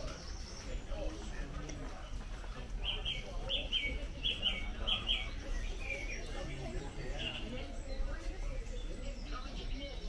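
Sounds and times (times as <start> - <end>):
murmur of indoor shop: 0.0 - 10.0.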